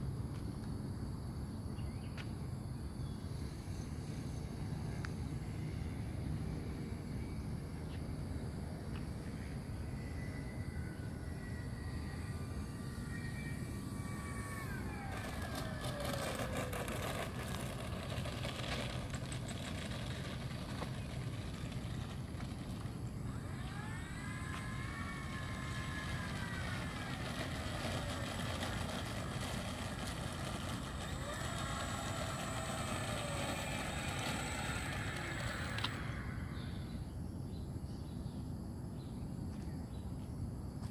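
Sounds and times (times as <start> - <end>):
model plane motor whine: 10.0 - 37.1
low rumble: 11.1 - 37.2.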